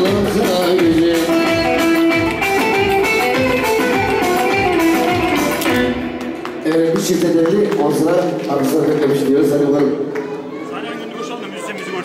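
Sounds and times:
steady drum beat: 0.0s - 6.2s
held melody line: 0.0s - 6.7s.

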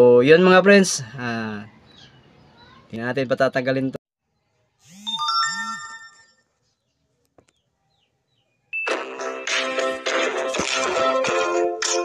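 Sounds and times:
electronic bell-like chime: 5.0s - 6.5s
music: 8.8s - 12.0s.

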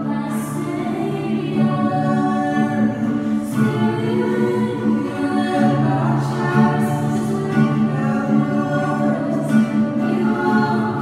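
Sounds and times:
acoustic guitar strumming: 0.0s - 11.0s
group singing worship song: 0.0s - 11.0s
ukulele: 0.0s - 11.0s.

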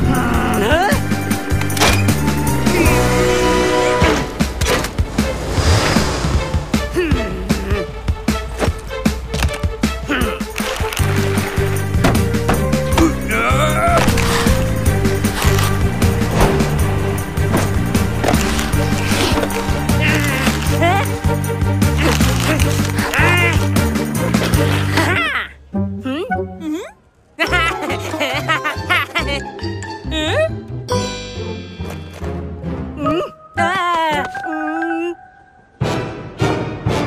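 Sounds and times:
background music: 0.0s - 37.0s
quick rising glide: 4.9s - 6.7s.

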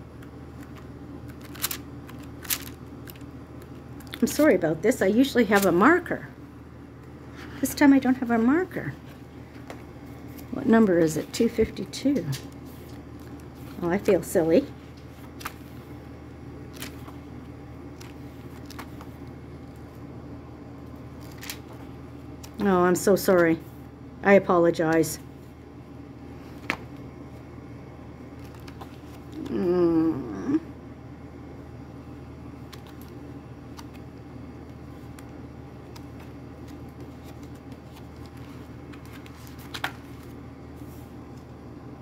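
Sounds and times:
steady low hum: 0.0s - 42.0s
page-turn swishes: 0.6s - 4.6s, 14.8s - 15.8s, 16.7s - 17.2s, 18.0s - 20.0s, 21.2s - 22.6s, 26.4s - 27.0s, 28.4s - 29.4s, 34.8s - 41.4s
paper pages leafed through: 0.6s - 4.6s, 18.0s - 20.0s, 34.7s - 41.2s.

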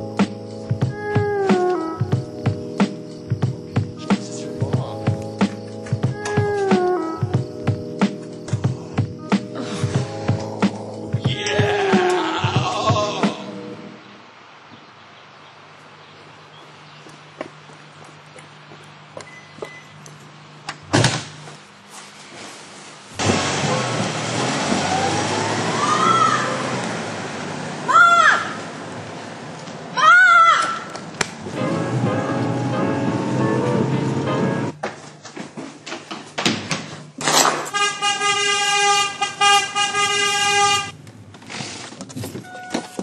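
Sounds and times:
footsteps on brick steps: 0.7s - 11.4s, 16.2s - 20.4s, 41.2s - 43.0s
loud sudden burst of noise: 23.2s - 27.3s
car horn steady tone: 31.6s - 34.7s, 37.7s - 41.0s, 42.4s - 43.0s.

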